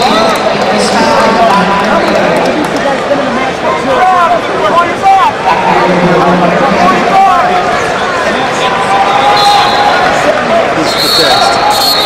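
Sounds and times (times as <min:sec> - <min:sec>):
arena crowd shouting: 0:00.0 - 0:12.0
referee's whistle blast: 0:09.3 - 0:10.1, 0:10.9 - 0:12.0.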